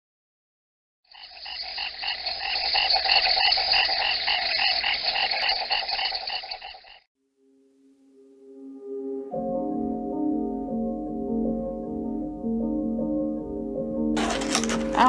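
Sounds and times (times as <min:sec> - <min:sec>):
frogs calling in pulsed chorus: 0:01.1 - 0:07.0.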